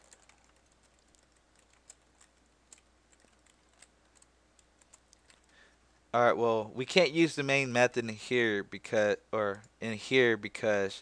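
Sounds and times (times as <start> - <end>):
faint keyboard typing: 0.0 - 5.8, 9.4 - 9.8.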